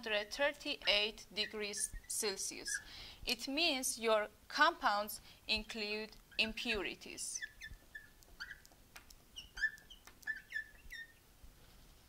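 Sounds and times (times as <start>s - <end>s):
marker squeaking on glass: 0.8s - 2.9s, 7.3s - 11.2s.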